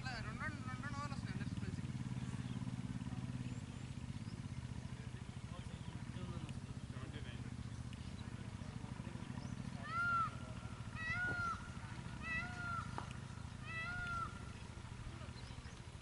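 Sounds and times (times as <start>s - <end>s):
animal calling high notes: 10.9s - 13.0s, 13.6s - 14.5s.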